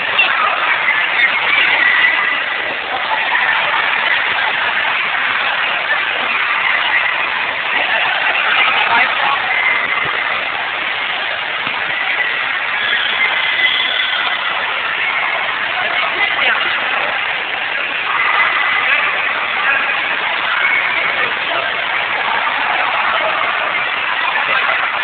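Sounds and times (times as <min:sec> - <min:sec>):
crowd voices: 0:00.0 - 0:25.0.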